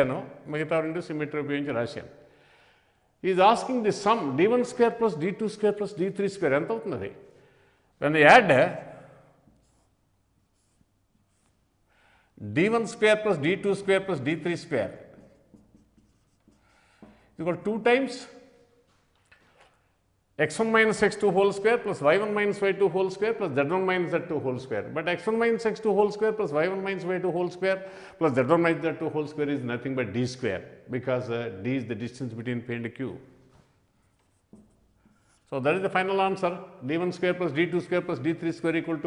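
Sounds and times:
marker writing on board: 15.1 - 17.2, 34.1 - 35.4.

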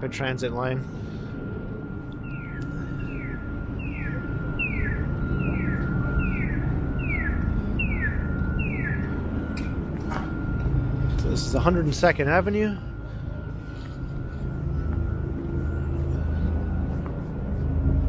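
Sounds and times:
low street noise rumble: 0.0 - 18.0
steady high tone: 0.0 - 18.0
pedestrian signal chirping: 1.9 - 18.0.

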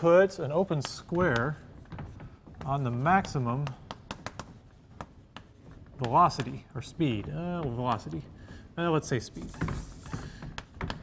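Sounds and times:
chalk writing on blackboard: 0.3 - 11.0.

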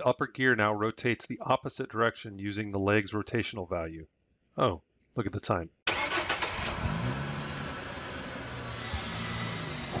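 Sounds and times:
car engine starting and revving: 5.9 - 10.0.

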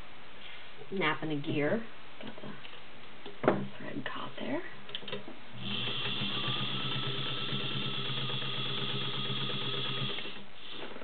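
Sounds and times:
sewing machine stitching: 5.6 - 10.4.

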